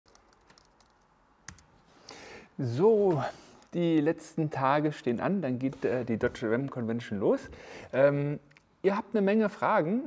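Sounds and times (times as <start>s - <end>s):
laptop keyboard typing: 0.1s - 1.7s.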